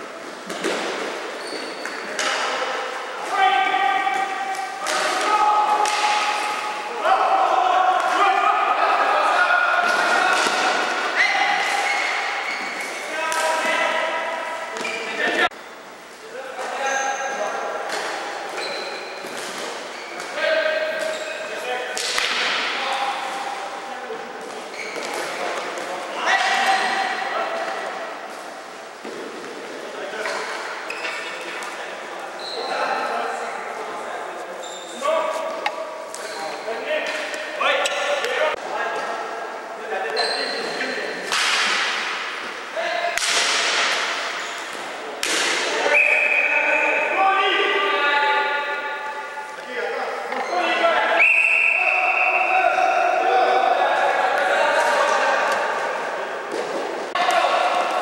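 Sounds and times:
players' voices: 0.0 - 58.0.

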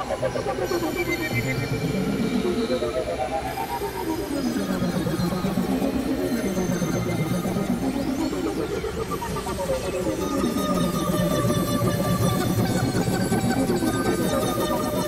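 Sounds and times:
experimental electronic music: 0.0 - 15.0.

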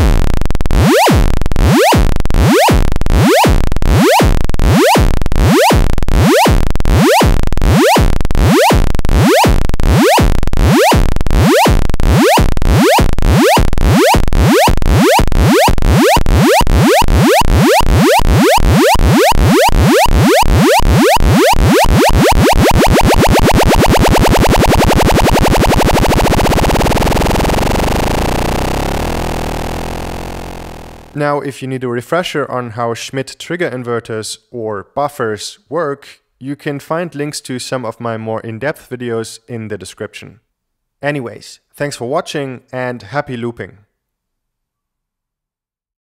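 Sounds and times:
continuous electronic buzzing tone: 0.0 - 31.2
repeating electronic synthesizer hits: 0.0 - 31.2.

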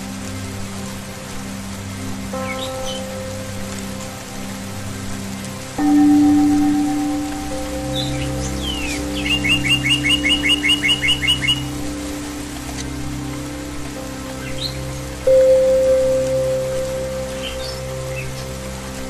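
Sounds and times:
slow ambient synth music: 0.0 - 19.0
steady hiss of water: 0.0 - 19.0
songbirds calling: 2.4 - 3.5, 5.8 - 12.6, 16.3 - 18.8.

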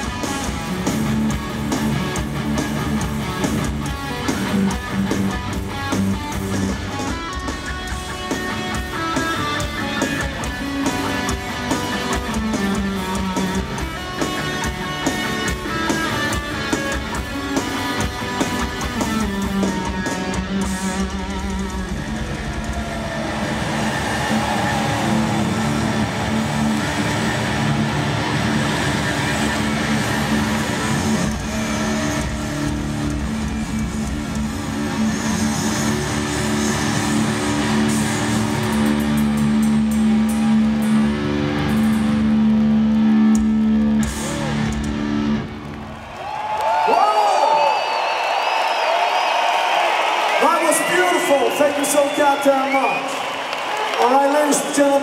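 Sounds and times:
rock band playing live: 0.0 - 45.8
crowd cheering and whistling: 3.2 - 55.0.

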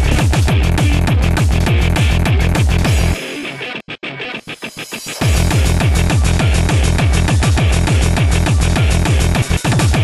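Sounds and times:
pounding kick drum: 0.0 - 3.2, 5.2 - 10.0
industrial electronic track: 0.0 - 10.0.

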